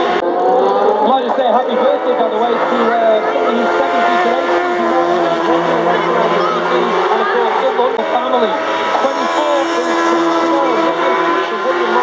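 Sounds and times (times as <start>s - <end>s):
racing engine at high revs: 0.0s - 12.0s
people talking: 0.8s - 12.0s.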